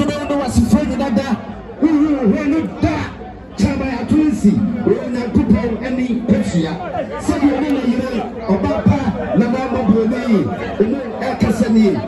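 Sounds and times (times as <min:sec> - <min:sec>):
overlapping conversation: 0:00.0 - 0:12.0.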